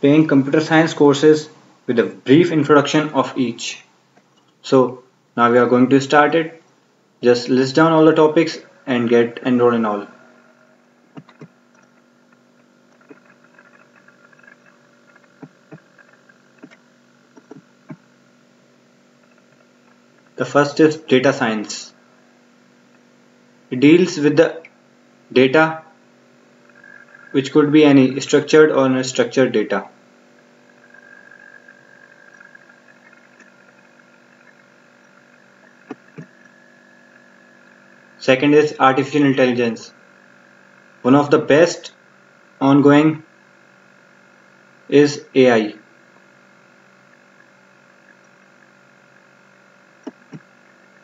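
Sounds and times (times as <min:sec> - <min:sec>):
faint electrical hum: 0:00.0 - 0:51.0.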